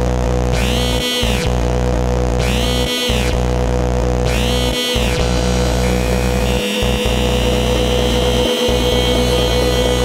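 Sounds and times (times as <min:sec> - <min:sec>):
heavy synth bass: 0:00.0 - 0:10.0
mid-pitched drone: 0:00.0 - 0:10.0
higher synth line: 0:04.3 - 0:10.0.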